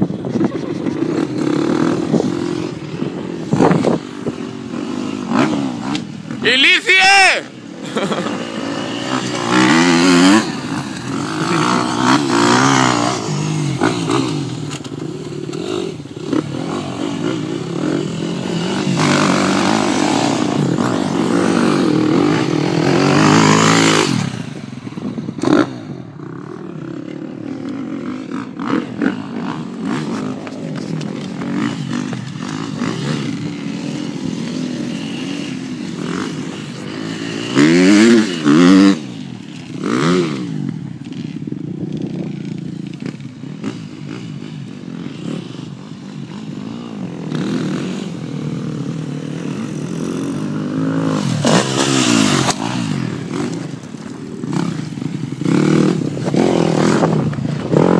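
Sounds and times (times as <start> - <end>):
dirt bike engines revving: 0.0 - 57.9.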